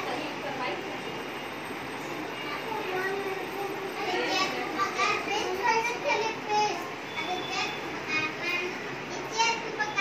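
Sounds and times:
young children chattering: 0:01.8 - 0:10.0.

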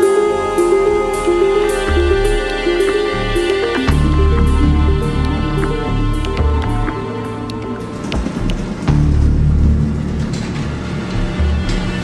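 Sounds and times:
deep low rumble: 0:01.0 - 0:12.0.

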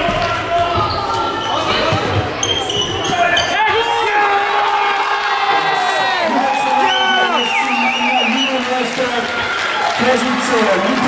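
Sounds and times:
crowd cheering: 0:03.5 - 0:11.0
spectators shouting: 0:03.5 - 0:11.0.

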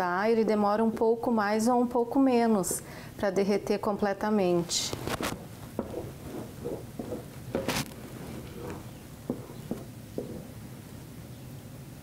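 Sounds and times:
wooden spoon stirring thick soap: 0:05.0 - 0:10.6
light knocks: 0:08.7 - 0:10.5.

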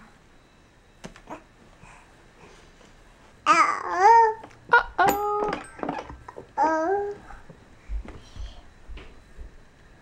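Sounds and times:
toddler babbling: 0:03.5 - 0:04.4, 0:06.6 - 0:07.2.

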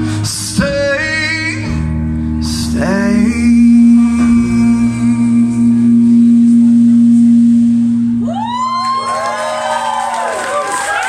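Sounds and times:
audience whooping and cheering: 0:08.2 - 0:11.0.

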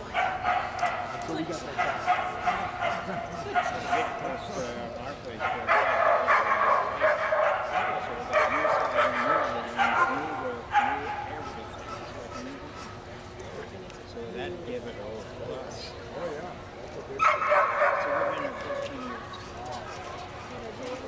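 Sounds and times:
dog barking and yipping: 0:00.2 - 0:04.2, 0:05.4 - 0:11.1, 0:17.2 - 0:18.8.

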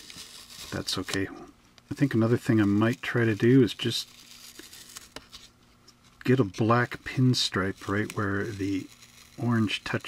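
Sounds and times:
masking tape peeling off: 0:00.0 - 0:01.3, 0:02.0 - 0:05.5, 0:06.2 - 0:10.0.

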